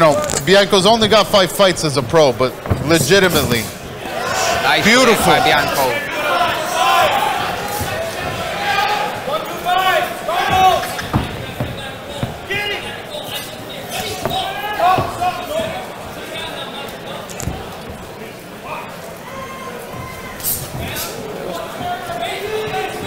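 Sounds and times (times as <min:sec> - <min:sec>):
punches thudding: 0:02.5 - 0:04.4, 0:07.2 - 0:16.4
footwork on canvas: 0:02.5 - 0:05.8, 0:06.8 - 0:19.1, 0:19.8 - 0:23.0
people shouting: 0:03.9 - 0:11.6, 0:13.9 - 0:15.8.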